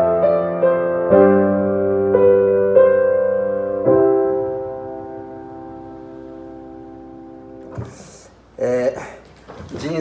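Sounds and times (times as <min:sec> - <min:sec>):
piano chord ringing: 0:00.0 - 0:07.8.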